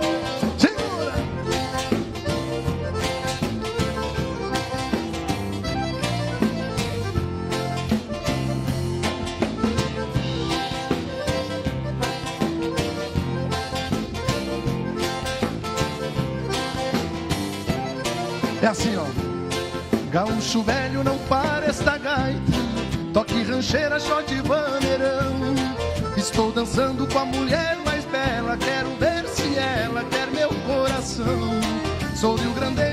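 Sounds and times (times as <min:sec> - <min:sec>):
acoustic guitar: 0:00.0 - 0:32.9
drum kit beat: 0:00.0 - 0:32.9
electric bass: 0:00.0 - 0:32.9
piano accordion: 0:00.0 - 0:32.9.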